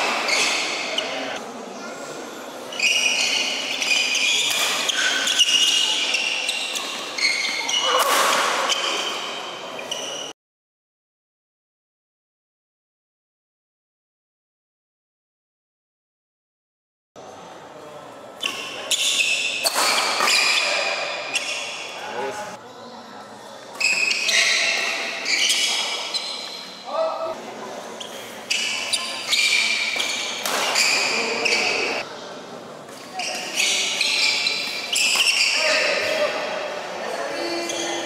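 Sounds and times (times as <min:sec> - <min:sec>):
shoes squeaking on court: 0:00.0 - 0:01.4, 0:02.7 - 0:10.3, 0:18.4 - 0:22.0, 0:23.7 - 0:26.8, 0:28.0 - 0:32.0, 0:32.9 - 0:36.1, 0:37.3 - 0:38.0
rackets hitting shuttlecock: 0:04.3 - 0:05.8, 0:18.4 - 0:21.5, 0:29.4 - 0:31.1.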